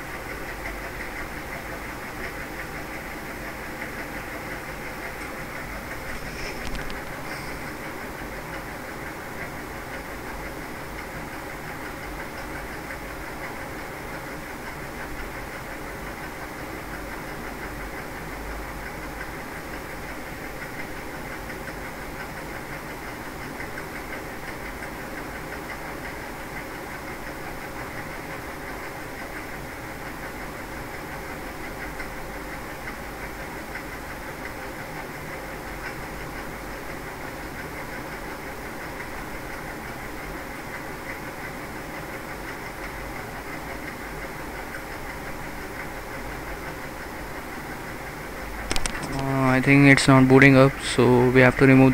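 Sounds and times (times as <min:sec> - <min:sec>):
machine hum and hiss: 0:00.0 - 0:51.9.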